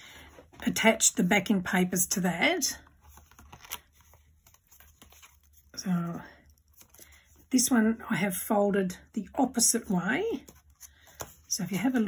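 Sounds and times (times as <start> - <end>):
cardstock card rustling and clicking: 3.0 - 5.7, 10.4 - 12.0.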